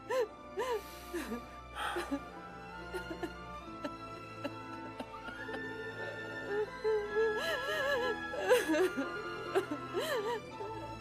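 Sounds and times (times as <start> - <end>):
woman sobbing softly: 0.0 - 10.9
slow dramatic music: 0.0 - 11.0.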